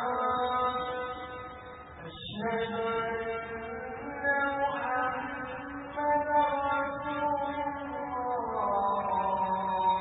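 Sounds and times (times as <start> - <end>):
man chanting: 0.0 - 10.0.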